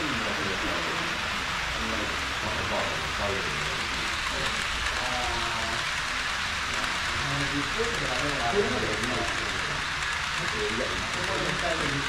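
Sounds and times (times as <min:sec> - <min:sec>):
faint voices: 0:00.0 - 0:06.0, 0:06.6 - 0:12.0.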